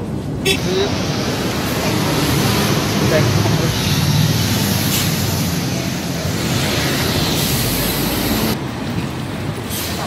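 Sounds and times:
bus passing close by: 0.0s - 10.0s
general traffic: 0.0s - 10.0s.

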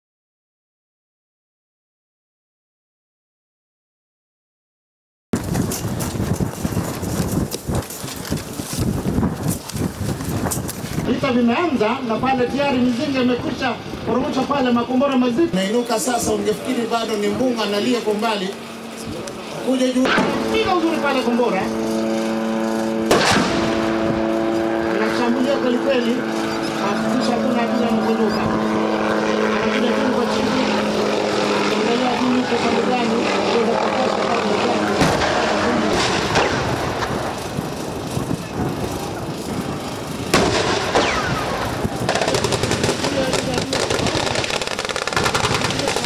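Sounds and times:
helicopter engine whine: 5.4s - 46.0s
gunfire: 20.0s - 20.4s, 23.1s - 24.0s, 35.0s - 37.1s, 40.3s - 46.0s
explosions: 23.1s - 24.0s, 35.0s - 37.3s, 40.3s - 46.0s.

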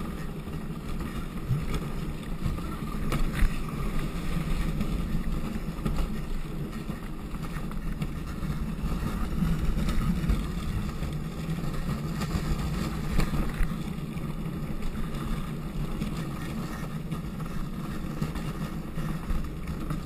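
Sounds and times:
wheels rumbling on asphalt: 0.0s - 20.0s.

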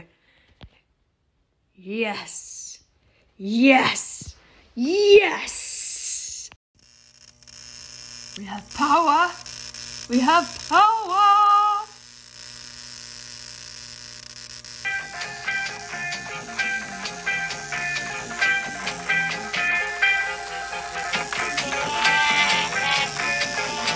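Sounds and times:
tesla coil spark gap buzzing: 6.8s - 23.9s
music with plucked notes: 14.9s - 23.9s.

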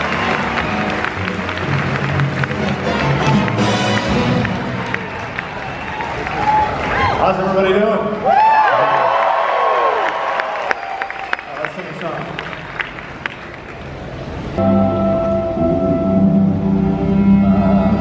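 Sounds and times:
audience applause: 0.0s - 14.3s
man speaking through loudspeakers: 7.2s - 8.2s, 11.5s - 12.5s
orchestra playing sustained chords: 14.6s - 18.0s.

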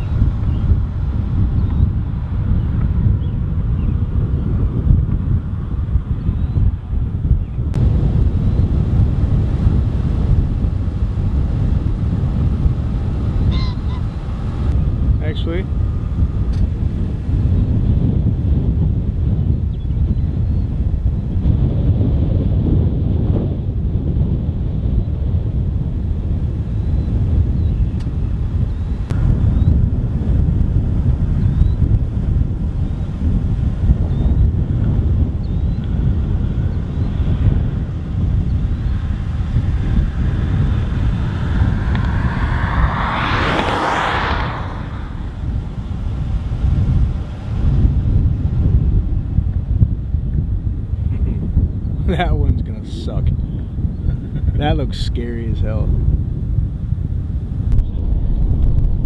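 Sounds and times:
wind buffeting microphone: 0.0s - 59.0s
vehicle tyres passing on road: 25.4s - 51.7s.

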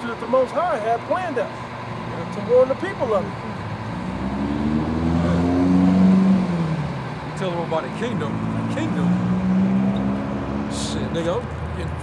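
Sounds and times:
vehicle engine droning: 0.0s - 12.0s.

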